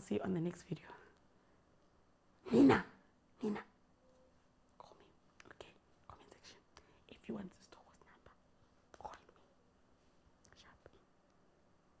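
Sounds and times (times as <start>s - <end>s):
woman whispering: 4.8s - 9.5s, 10.4s - 11.2s.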